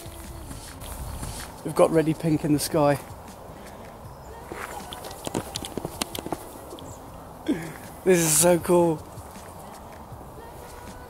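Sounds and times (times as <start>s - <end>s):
faint outdoor background noise: 0.0s - 11.0s
footsteps on outdoor path: 0.0s - 11.0s.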